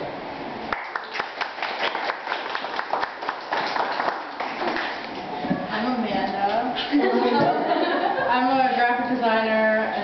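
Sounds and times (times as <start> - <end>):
small audience clapping: 0.7 - 5.2.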